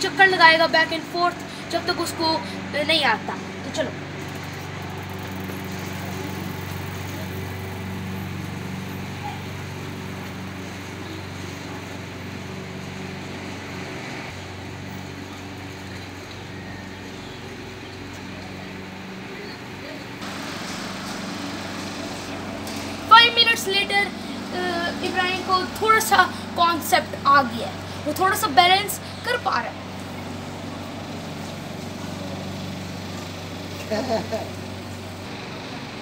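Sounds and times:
low mechanical hum: 0.0 - 36.0
street noise: 0.0 - 36.0.

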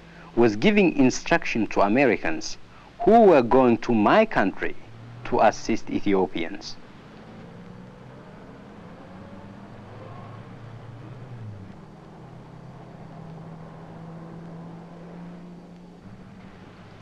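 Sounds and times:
faint background noise: 0.0 - 17.0.

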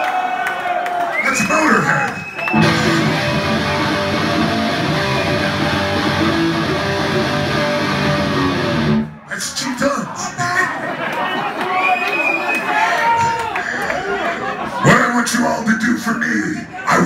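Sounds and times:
electric guitar riff through amplifier: 2.5 - 9.1.

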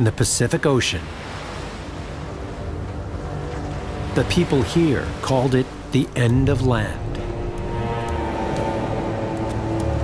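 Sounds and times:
ocean surf on rocks: 0.0 - 10.0.

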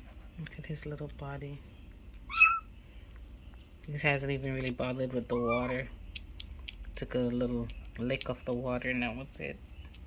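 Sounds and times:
kitten mewing: 2.3 - 2.7.

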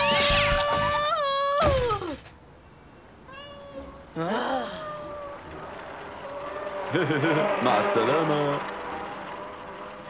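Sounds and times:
faint steady soundtrack tones: 2.3 - 10.0.

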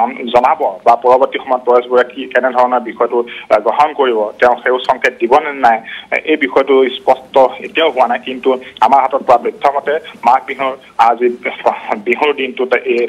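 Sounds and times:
man speaking over a telephone: 0.0 - 13.0.

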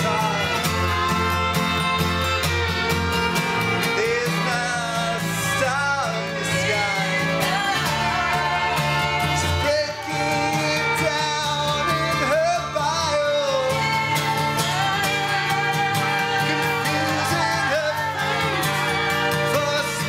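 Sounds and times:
acoustic band playing live: 0.0 - 20.0.

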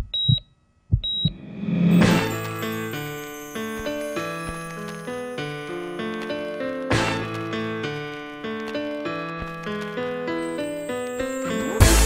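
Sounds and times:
high heart monitor beeps: 0.0 - 1.5
low heartbeat thumps: 0.0 - 1.6.

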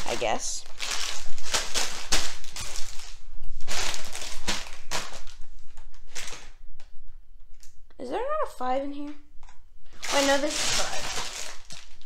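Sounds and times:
plastic bags crinkling: 0.0 - 6.6, 9.9 - 12.0.

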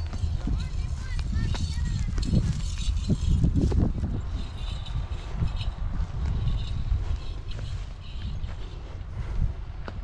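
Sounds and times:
footsteps on wheat stubble: 0.0 - 10.0.

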